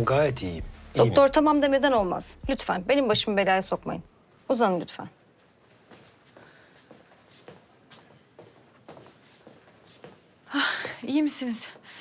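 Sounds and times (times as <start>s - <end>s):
footsteps on hard floor: 5.4s - 11.9s.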